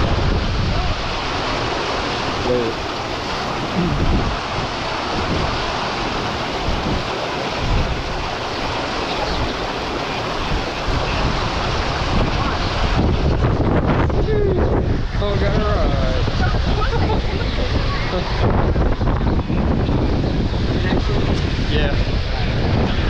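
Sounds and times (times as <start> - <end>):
water rushing down slide: 0.0 - 23.0
wind buffeting microphone: 0.0 - 23.0
faint voices: 14.2 - 18.6.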